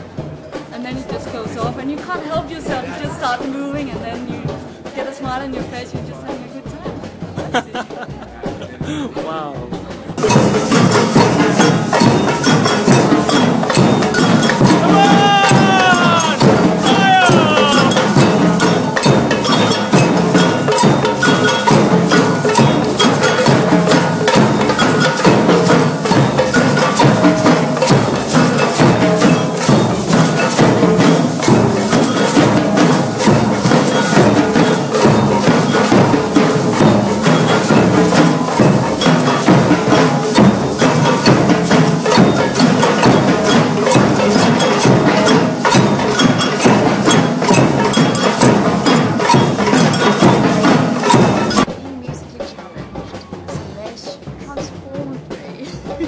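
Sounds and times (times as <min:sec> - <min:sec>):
bass drums struck with mallets: 0:00.0 - 0:56.0
metal shakers: 0:00.0 - 0:56.0.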